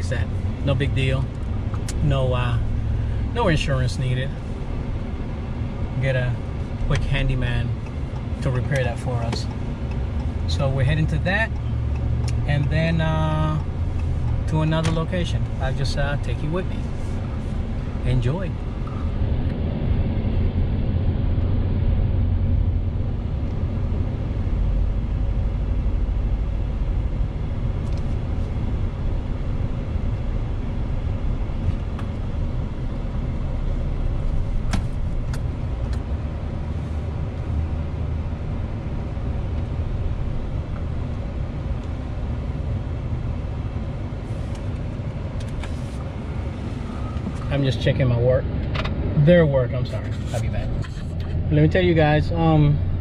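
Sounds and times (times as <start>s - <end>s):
truck road and engine rumble: 0.0s - 53.0s.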